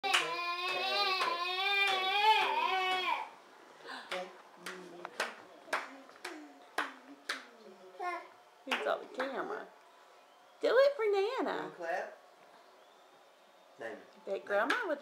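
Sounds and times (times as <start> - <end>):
hand claps: 0.0 - 3.1, 4.0 - 7.5, 8.7 - 9.4, 14.6 - 14.9.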